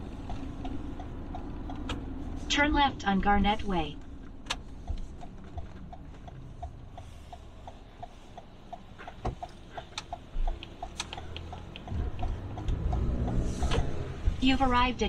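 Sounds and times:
car turn signal clicking: 0.0 - 2.4, 3.9 - 14.5
road and engine rumble: 0.0 - 15.0.

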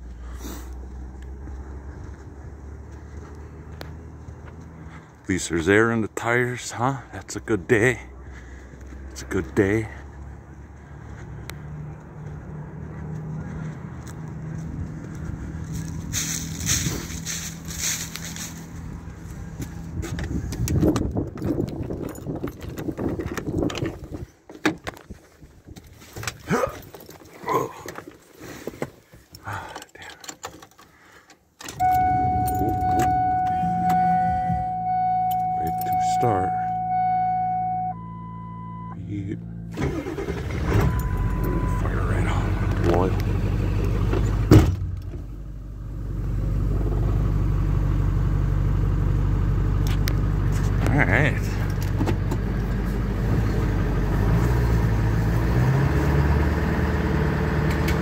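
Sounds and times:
diesel engine starting and idling: 31.6 - 58.0
warning chime: 31.8 - 39.1, 39.9 - 42.5.

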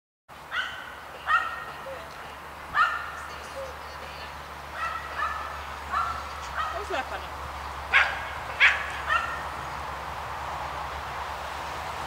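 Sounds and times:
dog yelping: 2.8 - 3.1, 7.9 - 9.5.

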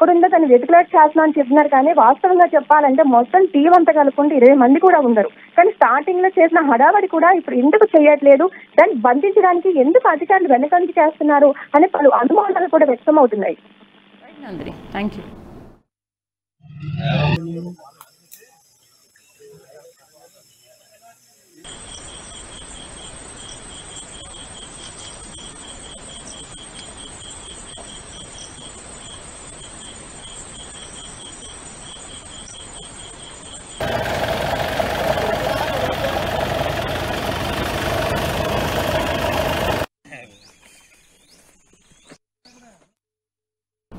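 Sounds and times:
insects chirping: 17.6 - 39.9.

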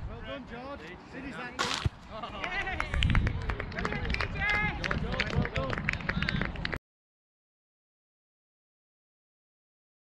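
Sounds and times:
wind rumbling on microphone: 2.5 - 6.8.

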